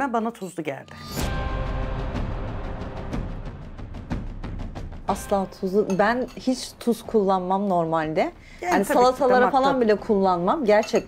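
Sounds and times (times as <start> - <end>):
dramatic music with timpani: 0.9 - 5.8.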